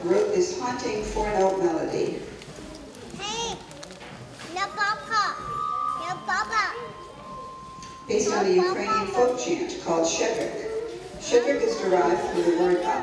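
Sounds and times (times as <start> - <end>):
children calling out: 2.6 - 9.6
steady high tone: 5.2 - 11.6.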